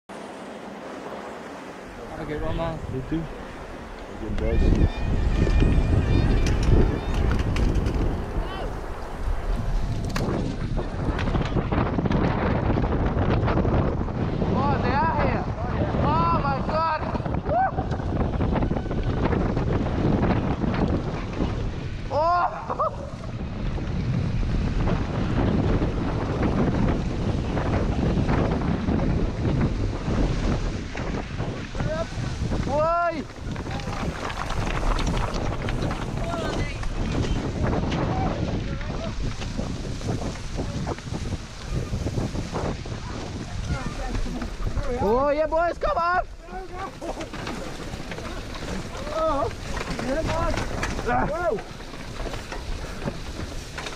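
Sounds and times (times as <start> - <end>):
wind rushing over microphone: 0.1 - 53.9
riders yelling: 22.0 - 23.4, 31.8 - 34.5, 36.0 - 39.2, 43.1 - 51.8.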